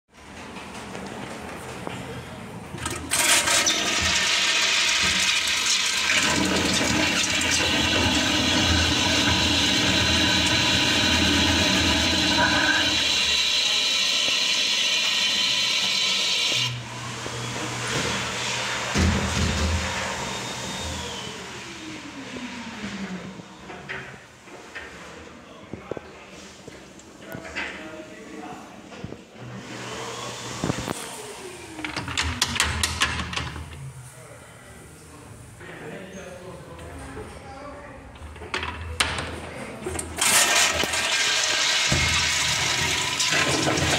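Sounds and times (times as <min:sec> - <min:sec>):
toilet bowl siphoning rumble: 0:02.8 - 0:16.8, 0:40.2 - 0:43.9
water hissing into toilet bowl: 0:03.1 - 0:16.7, 0:40.2 - 0:43.9.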